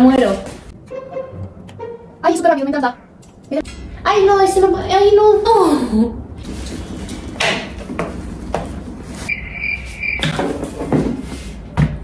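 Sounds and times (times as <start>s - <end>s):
crickets chirping: 9.3s - 10.4s.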